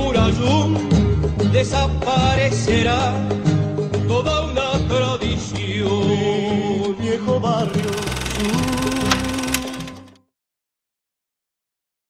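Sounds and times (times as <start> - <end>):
sung song with accompaniment: 0.0 - 10.2.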